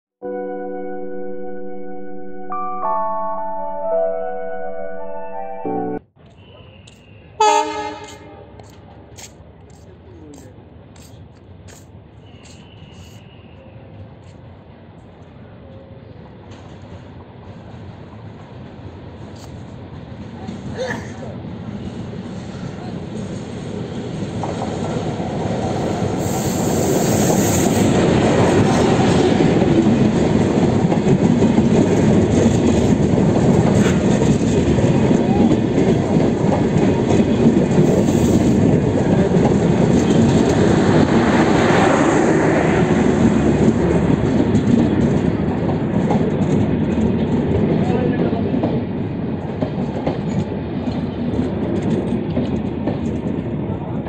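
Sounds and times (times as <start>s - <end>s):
train wheel squeal: 6.2s - 7.4s, 12.1s - 14.1s
train wheels clattering: 24.2s - 41.5s.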